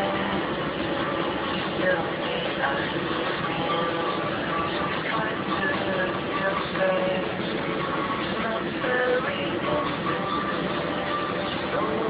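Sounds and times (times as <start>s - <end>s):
dense background noise: 0.0s - 12.0s
indistinct voices: 0.0s - 12.0s.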